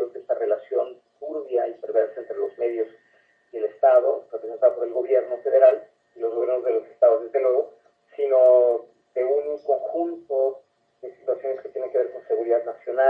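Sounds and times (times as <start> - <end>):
man talking over telephone: 0.0 - 2.9, 3.6 - 7.6, 8.2 - 13.0.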